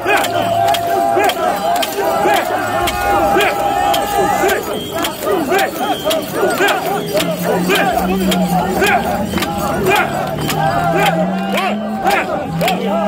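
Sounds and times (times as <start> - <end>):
people chanting together: 0.0 - 13.0.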